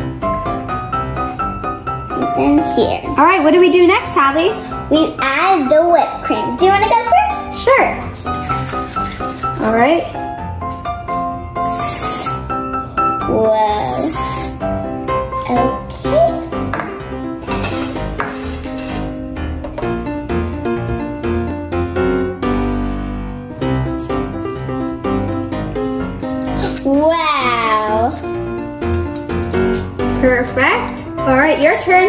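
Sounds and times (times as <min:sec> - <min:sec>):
child's voice: 0:04.9 - 0:08.0, 0:13.3 - 0:14.4, 0:15.4 - 0:16.5, 0:26.6 - 0:28.2.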